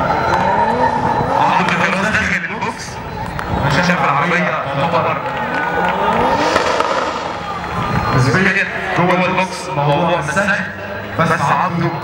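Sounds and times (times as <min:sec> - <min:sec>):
car engine revving hard: 0:04.7 - 0:08.3.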